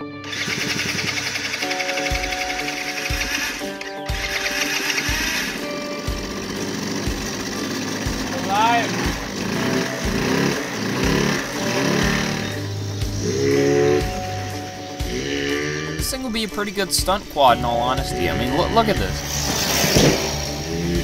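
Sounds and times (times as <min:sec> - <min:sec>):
small engine rattling: 0:00.0 - 0:14.7, 0:19.0 - 0:21.0
background music with steady beat: 0:00.0 - 0:21.0.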